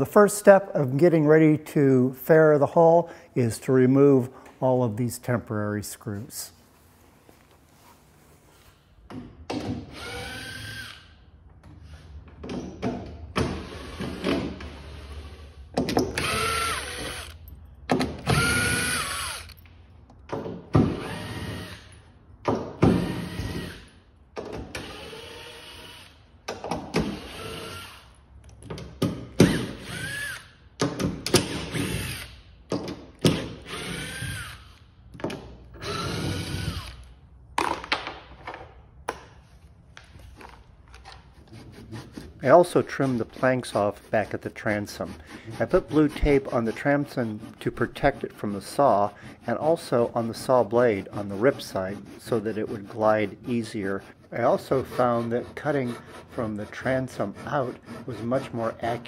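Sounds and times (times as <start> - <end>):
power drill whining: 9.9 - 11.1, 16.2 - 17.4, 18.2 - 19.6, 29.4 - 30.5, 33.6 - 34.9, 35.8 - 37.1.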